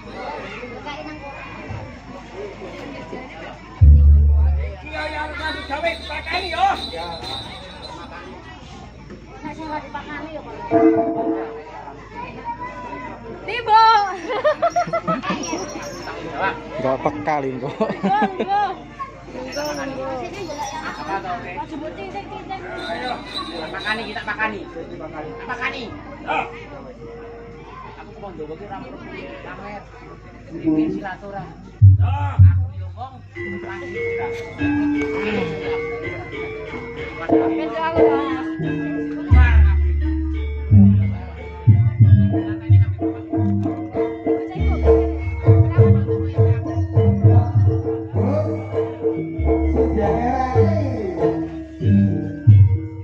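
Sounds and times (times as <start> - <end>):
chatter of voices: 0.0 - 53.0
people talking at once: 0.0 - 53.0
sharp loud call: 4.7 - 8.2.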